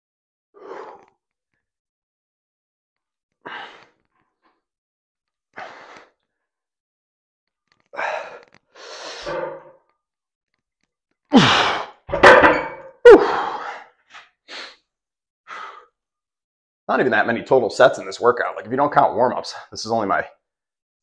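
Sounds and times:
man breathing hard: 3.4s - 4.0s, 5.6s - 6.2s, 7.9s - 9.4s, 13.2s - 13.9s, 15.5s - 16.0s.

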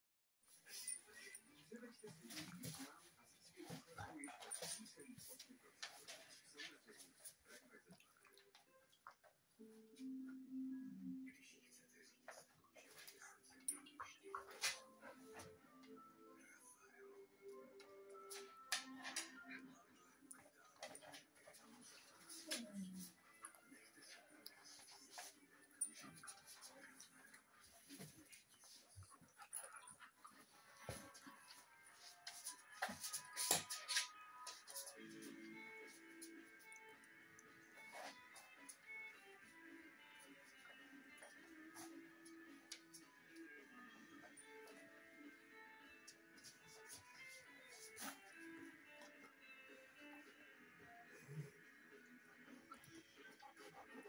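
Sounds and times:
dogs play-fighting: 0.7s - 9.5s, 17.4s - 54.0s.

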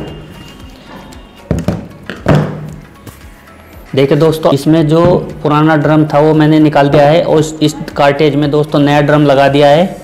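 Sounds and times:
background music: 0.0s - 10.0s
plastic cartridge thunking on wood: 1.5s - 2.7s.

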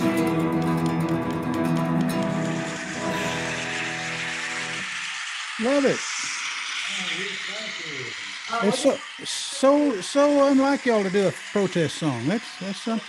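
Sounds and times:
acoustic guitar: 0.0s - 4.9s
steady hiss: 2.3s - 13.0s.

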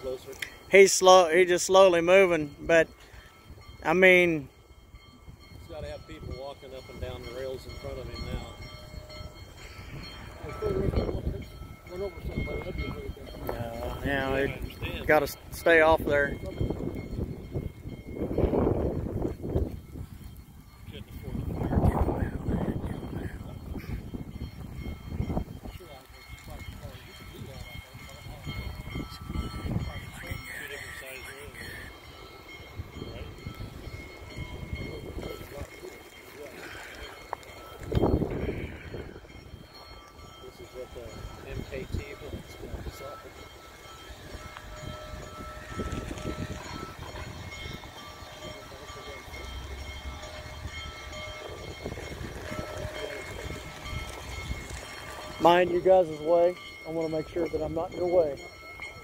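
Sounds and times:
distant steam locomotive: 0.0s - 59.0s
wind on microphone: 16.1s - 30.7s, 37.7s - 39.8s, 44.1s - 48.5s, 50.3s - 55.6s.

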